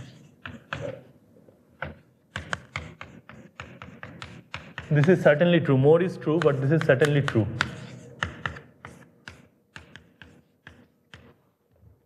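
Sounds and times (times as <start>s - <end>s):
chalk tapping on a blackboard: 0.0s - 1.1s, 1.8s - 5.5s, 6.2s - 11.4s.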